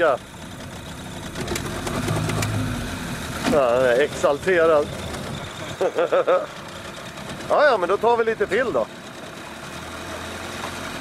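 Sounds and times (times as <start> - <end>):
outboard motor idling: 0.0 - 11.0.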